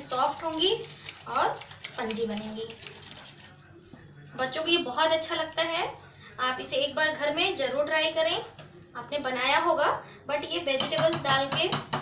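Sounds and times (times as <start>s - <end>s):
whisk stirring batter in glass bowl: 0.0s - 5.4s.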